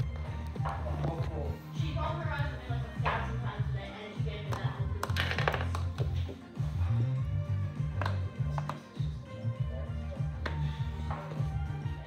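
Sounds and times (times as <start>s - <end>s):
background music with bass: 0.0s - 12.0s
plastic toys tapping on floor: 4.5s - 6.2s.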